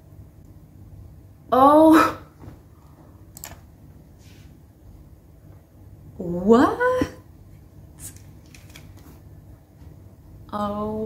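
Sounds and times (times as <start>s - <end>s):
headphones rustling and clicking: 8.1s - 9.2s.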